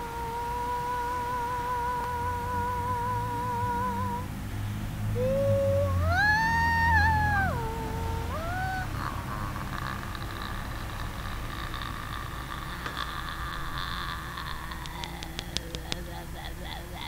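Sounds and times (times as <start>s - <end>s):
sliding wailing pitch: 0.0s - 4.3s, 5.1s - 10.8s
airy noisy texture: 0.0s - 17.0s
low steady drone: 0.0s - 17.0s.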